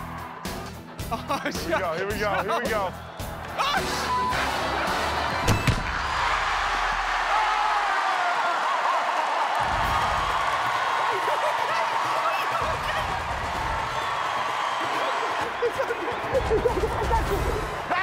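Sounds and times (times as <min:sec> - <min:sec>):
crowd cheering and whooping: 0:00.0 - 0:00.8, 0:02.6 - 0:18.0.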